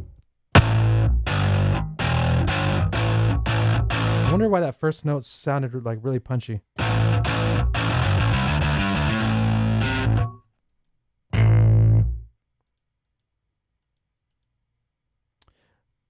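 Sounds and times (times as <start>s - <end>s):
distorted electric bass: 0.6s - 4.4s, 6.8s - 10.4s, 11.3s - 12.3s.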